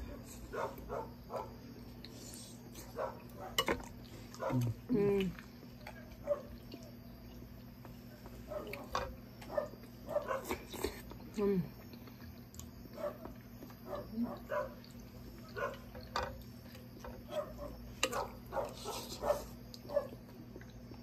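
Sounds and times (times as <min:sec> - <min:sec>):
chewing and mouth smacking: 0:01.8 - 0:21.0.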